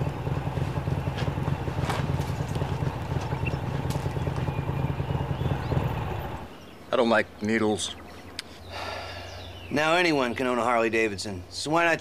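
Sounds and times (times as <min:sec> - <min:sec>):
motorcycle engine idling: 0:00.0 - 0:06.6.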